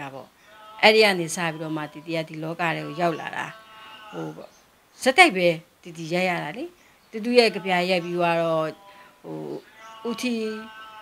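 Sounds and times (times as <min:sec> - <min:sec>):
woman humming vocal sound: 0:00.8 - 0:04.5.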